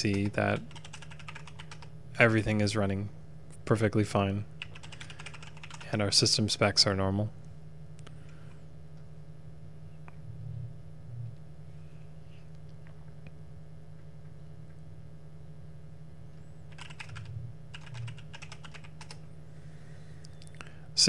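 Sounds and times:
computer keyboard typing: 0.0s - 1.9s, 4.6s - 6.0s, 16.7s - 19.2s
steady low hum: 0.0s - 21.0s.

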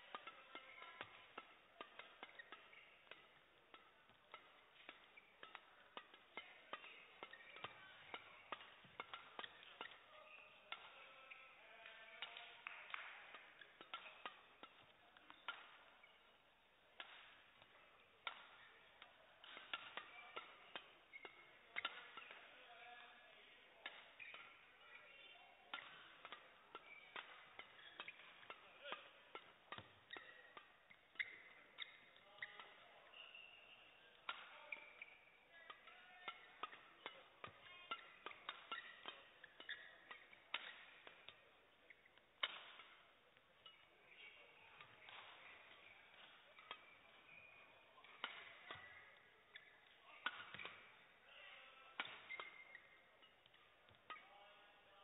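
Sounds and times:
badminton racket hits: 0.0s - 54.3s
shoes squeaking on court: 0.0s - 54.7s.

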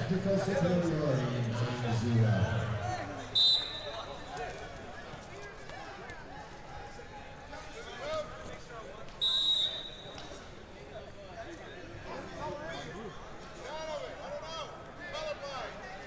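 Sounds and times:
murmur of spectators chatting: 0.0s - 16.0s
referee's whistle blasts: 3.3s - 4.3s, 9.2s - 10.4s.

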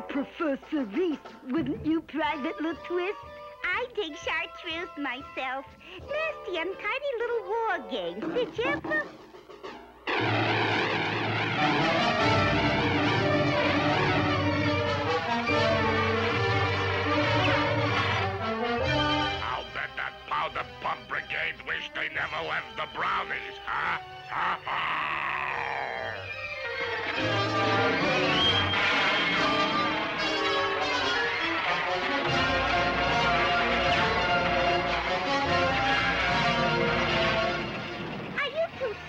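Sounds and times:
busy orchestral music: 0.0s - 24.7s, 26.0s - 39.0s
descending musical slide: 10.1s - 18.8s, 26.1s - 38.4s
propeller engine drone: 10.1s - 21.0s, 26.2s - 38.8s.

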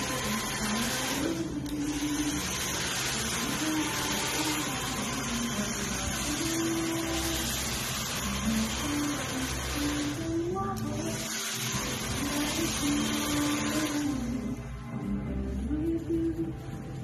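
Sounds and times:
small appliance motor whirring: 0.0s - 14.6s.

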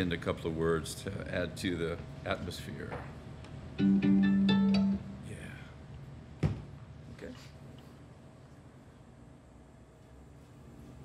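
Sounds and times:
plucked guitar notes: 3.8s - 5.2s.

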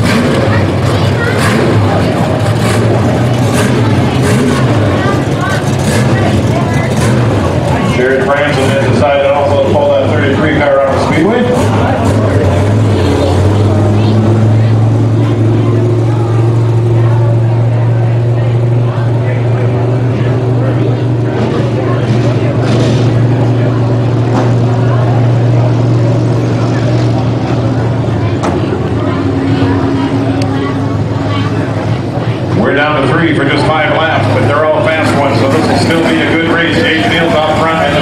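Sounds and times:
race car engines droning: 0.0s - 38.0s.

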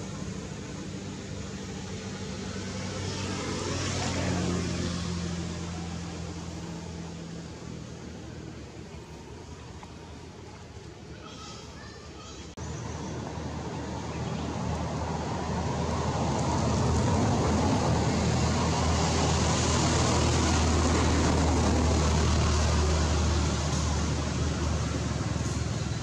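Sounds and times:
passing vehicle engine hum: 0.0s - 11.1s, 12.6s - 26.0s.

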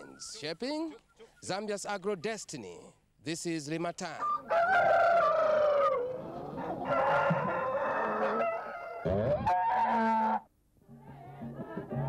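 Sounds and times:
rooster crowing: 4.3s - 10.5s.

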